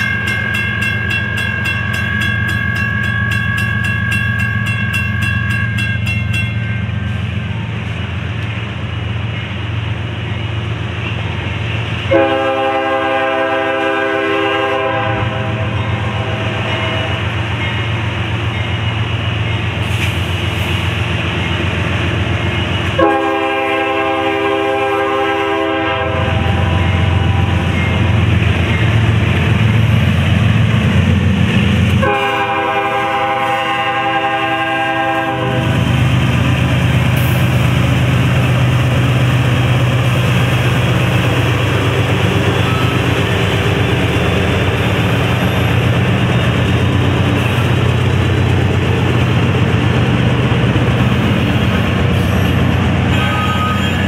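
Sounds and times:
diesel locomotives running: 0.0 - 54.0
train horn blasts: 12.1 - 17.3, 23.0 - 27.7, 32.0 - 35.9, 53.1 - 54.0.

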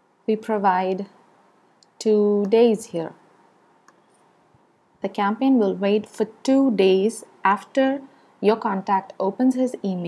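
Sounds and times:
faint computer mouse click: 3.8 - 4.2.

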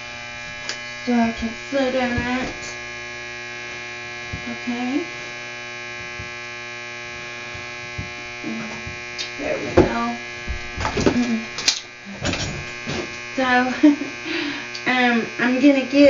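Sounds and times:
electrical hum: 0.0 - 16.0
chair knocks and clatter: 9.6 - 11.3, 12.2 - 13.1.

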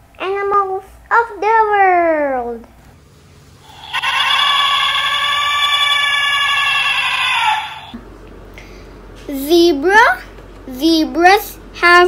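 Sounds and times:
elephant trumpeting through small speaker: 3.6 - 8.0.

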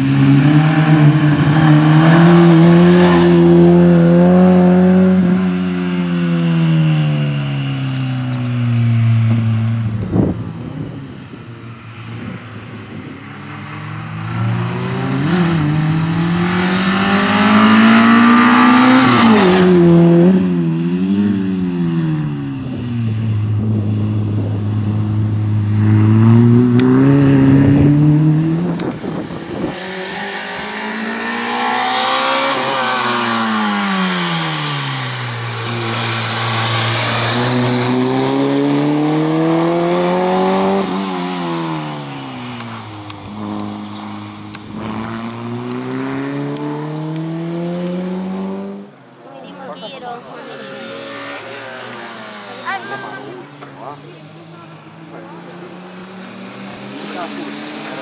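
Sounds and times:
car engine revving hard: 0.0 - 7.8, 13.8 - 49.1, 50.3 - 58.0.

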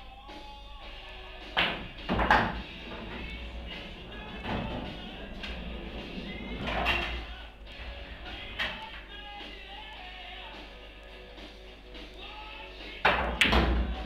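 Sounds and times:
rock music: 0.0 - 14.0
pool balls knocking: 1.5 - 7.3, 13.1 - 14.0.

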